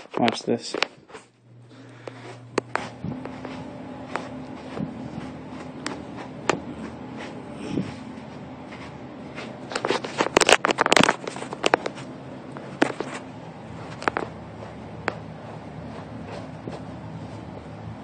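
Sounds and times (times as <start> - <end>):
brush raking through dog fur: 2.1 - 10.4, 15.4 - 17.6.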